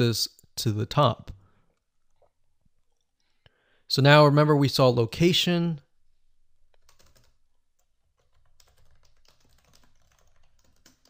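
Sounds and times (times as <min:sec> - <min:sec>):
faint typing on keyboard: 0:06.6 - 0:11.0.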